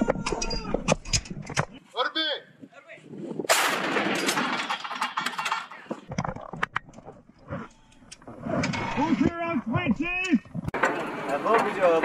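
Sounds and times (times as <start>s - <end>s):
artillery gun blast: 3.5s - 4.5s.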